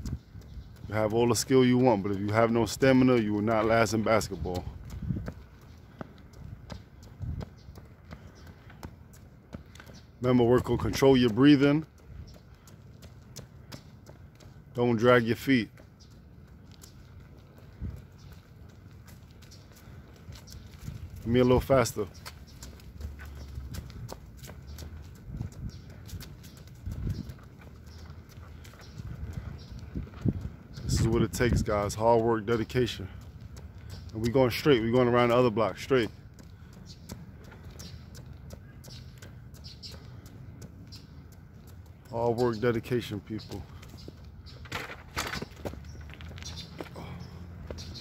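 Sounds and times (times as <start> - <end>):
jogging footsteps on concrete: 0.0 - 48.0.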